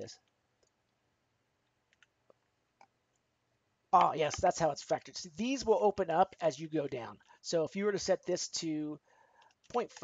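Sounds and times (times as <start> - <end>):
computer mouse clicks: 1.6 - 3.3.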